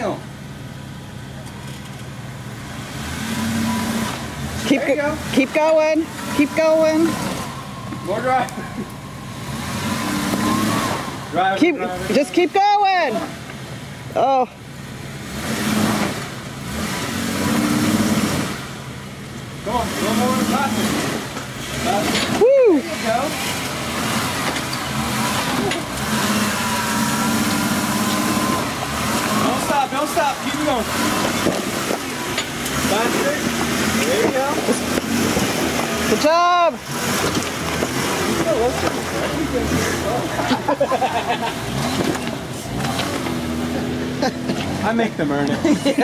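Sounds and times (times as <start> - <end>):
engine revving under load: 0.0 - 46.0.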